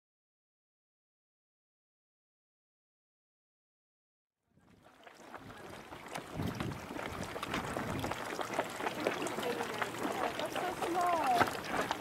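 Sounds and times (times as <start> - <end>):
geyser water sloshing and gurgling: 4.6 - 12.0
small water splashes: 4.6 - 12.0.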